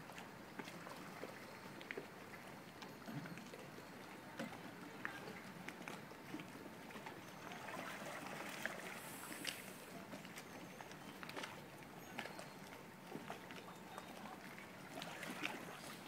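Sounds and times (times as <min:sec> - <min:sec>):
water lapping around boats: 0:00.0 - 0:16.0.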